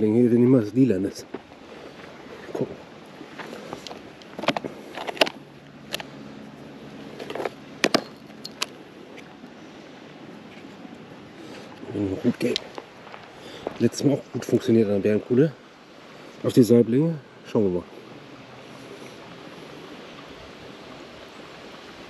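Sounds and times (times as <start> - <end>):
faint outdoor hiss: 0.0 - 22.0
fishing tackle clicks and rustles: 1.8 - 9.5.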